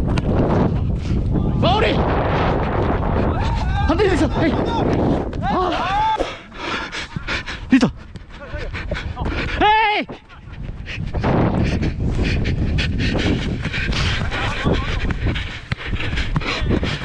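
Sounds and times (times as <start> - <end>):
wind buffeting microphone: 0.0 - 17.0
heavy breathing: 6.2 - 9.6, 10.2 - 17.0.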